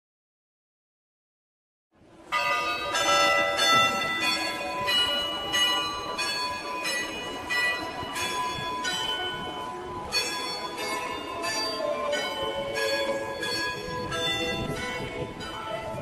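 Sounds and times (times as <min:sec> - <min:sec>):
church bells ringing a peal: 0:02.3 - 0:16.0.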